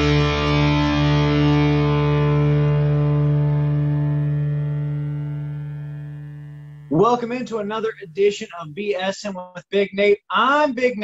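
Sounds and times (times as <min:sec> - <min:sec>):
distorted electric guitar chord: 0:00.0 - 0:06.9.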